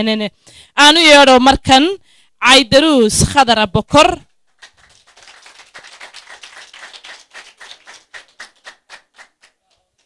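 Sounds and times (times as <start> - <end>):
audience applauding: 4.6 - 10.0.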